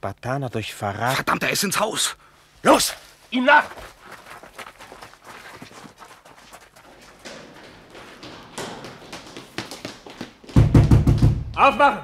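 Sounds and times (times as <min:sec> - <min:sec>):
people running footsteps: 0:02.8 - 0:12.0.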